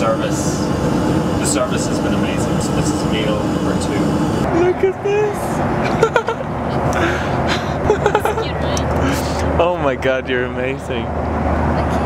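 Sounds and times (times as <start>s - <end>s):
airliner cabin rumble: 0.0s - 9.6s
voices: 0.0s - 12.0s.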